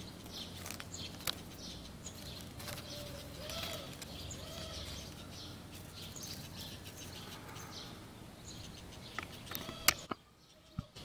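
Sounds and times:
birds chirping: 0:00.0 - 0:11.0
low cooing calls: 0:02.6 - 0:08.2, 0:09.4 - 0:11.0.

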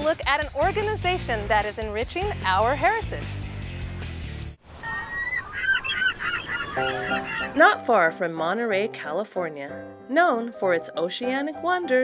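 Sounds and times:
background music: 0:00.0 - 0:04.6, 0:06.7 - 0:12.0
birds calling: 0:04.7 - 0:07.7.

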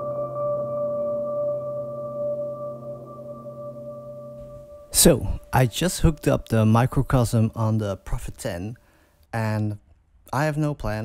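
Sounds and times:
ringing electric piano tones: 0:00.0 - 0:06.5.

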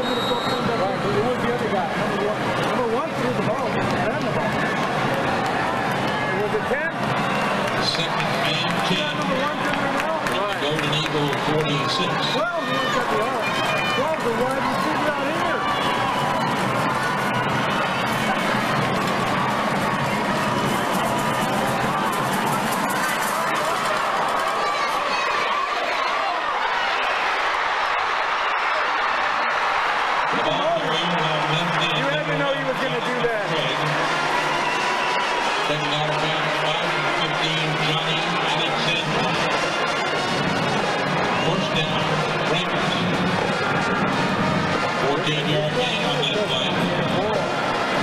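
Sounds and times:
crowd talking and cheering: 0:00.0 - 0:48.0
music playing: 0:30.0 - 0:48.0.

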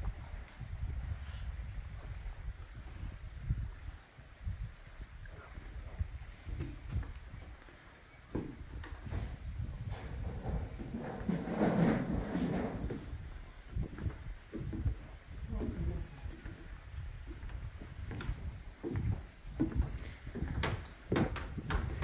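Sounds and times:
wind buffeting microphone: 0:00.0 - 0:22.0
footsteps: 0:08.3 - 0:22.0.

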